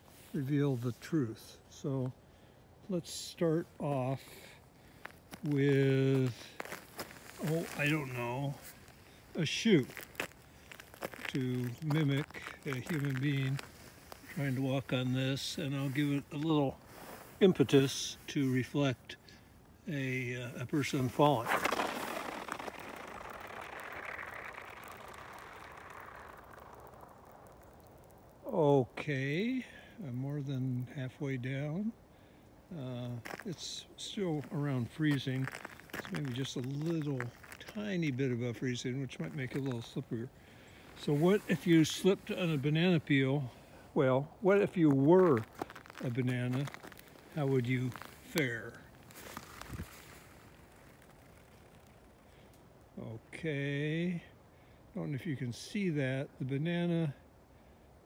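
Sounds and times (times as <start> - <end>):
shoe scraping on ice: 4.1 - 19.0, 20.3 - 27.8, 33.2 - 40.0, 40.8 - 43.9, 44.5 - 52.2.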